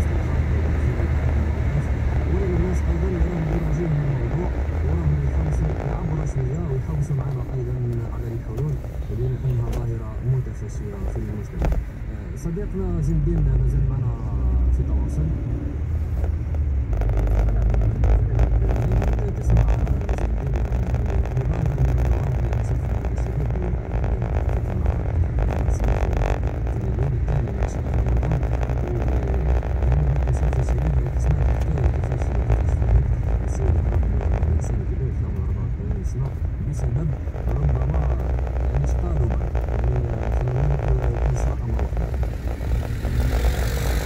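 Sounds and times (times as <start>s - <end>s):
car engine rumble: 0.0s - 44.0s
tyre and road noise: 0.0s - 44.0s.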